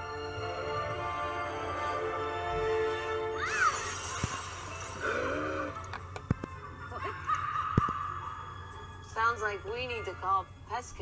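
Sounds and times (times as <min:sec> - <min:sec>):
background music: 0:00.0 - 0:11.0
animal squealing calls: 0:03.4 - 0:04.2, 0:05.0 - 0:05.9.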